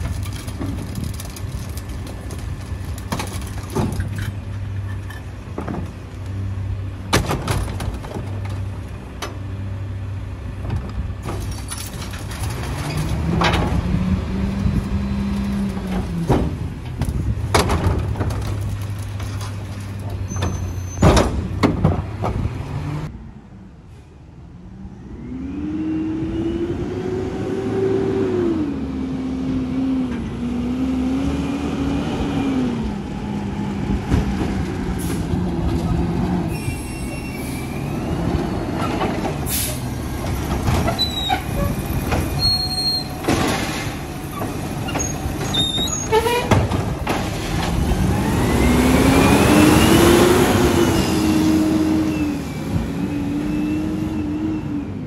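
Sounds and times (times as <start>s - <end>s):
garbage truck engine revving: 25.2s - 55.0s
short high squeals: 36.5s - 38.2s, 42.4s - 43.2s.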